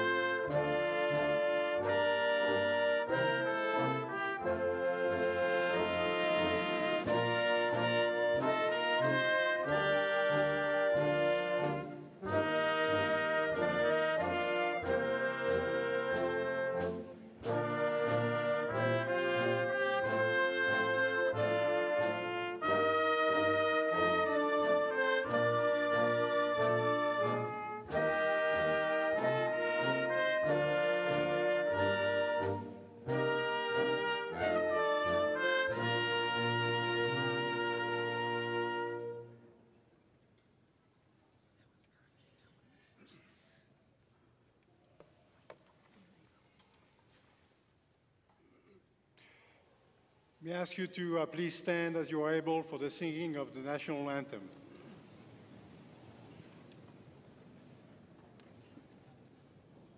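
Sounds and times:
concert band slow brass chords: 0.0s - 40.0s.

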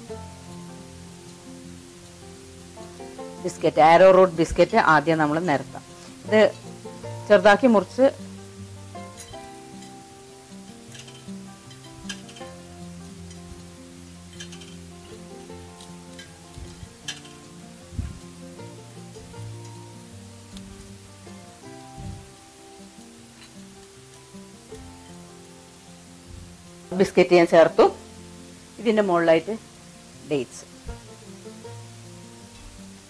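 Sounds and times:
soft background music: 0.0s - 33.0s.

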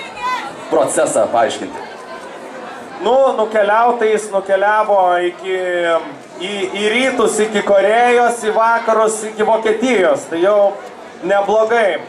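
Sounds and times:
low crowd chatter: 0.0s - 12.0s
man speaking over microphone: 0.7s - 1.8s, 3.0s - 12.0s.

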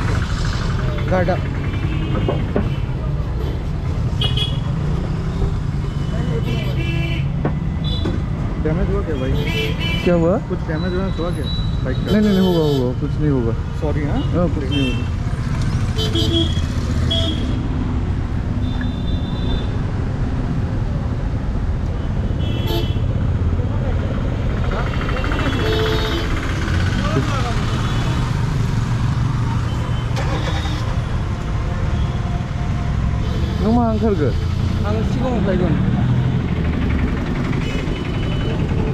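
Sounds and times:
traffic rumble: 0.0s - 38.9s
vehicle horn toots: 29.9s - 30.8s.

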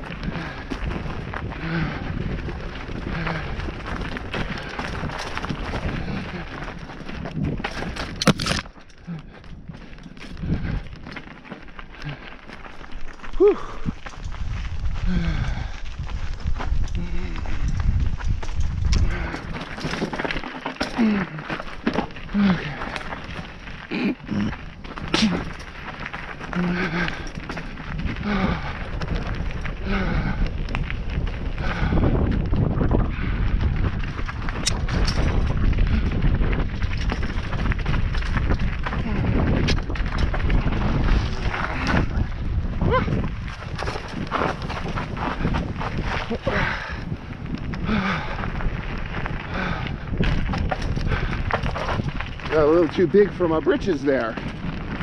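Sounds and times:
bike clattering and knocking: 0.0s - 9.0s, 17.4s - 23.9s, 24.5s - 55.0s
bike tyres crunching on gravel: 0.0s - 55.0s
wind rumble on microphone: 0.0s - 55.0s.

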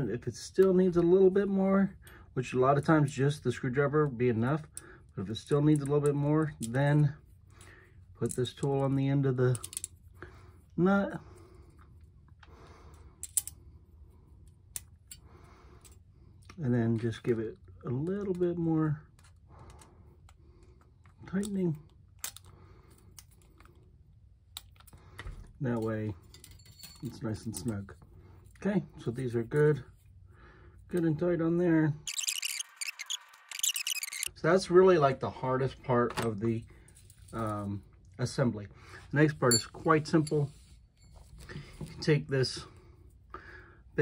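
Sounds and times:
soft breaths: 40.4s - 44.0s.

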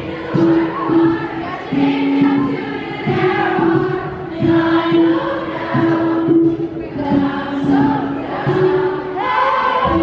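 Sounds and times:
ukulele: 0.0s - 10.0s
woman singing into microphone: 0.0s - 10.0s.

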